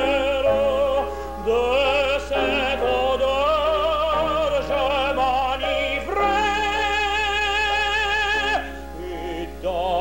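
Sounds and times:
operatic tenor singing: 0:00.0 - 0:10.0.

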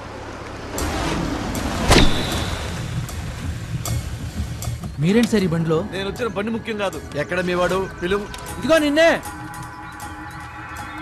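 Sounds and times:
car engine rumbling: 0:00.0 - 0:08.6.

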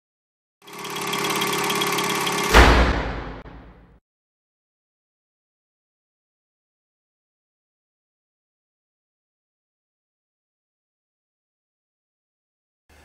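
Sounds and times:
many-toned drone: 0:00.7 - 0:03.9
deep boom: 0:02.5 - 0:03.9.

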